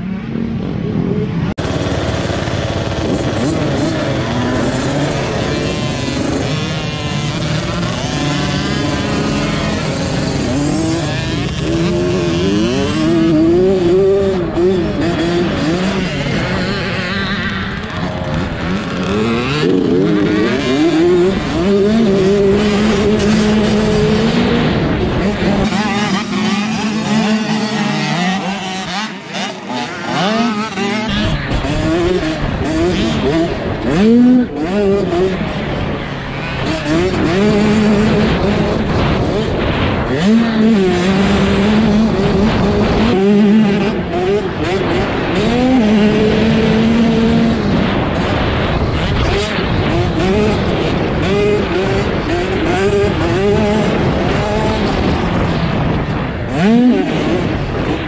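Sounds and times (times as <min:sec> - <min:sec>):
two-stroke minibike engine revving: 0:00.0 - 0:58.0.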